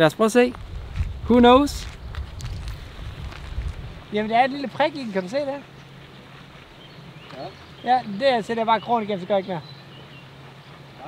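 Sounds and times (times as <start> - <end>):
wind buffeting microphone: 0.0 - 8.2.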